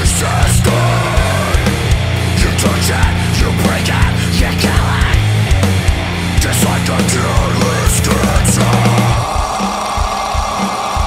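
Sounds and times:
heavy low guitar: 0.0 - 9.6.

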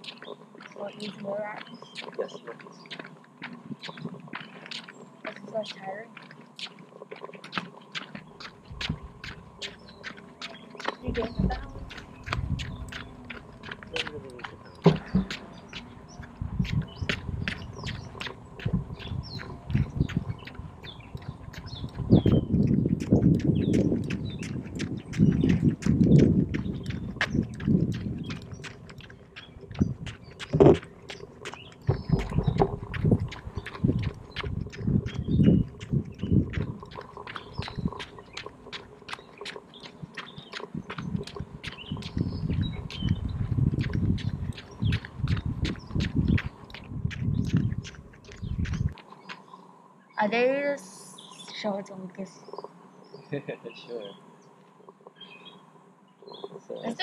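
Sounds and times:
birds chirping: 0.0 - 57.0
low rumble: 10.9 - 39.2, 40.6 - 49.0.

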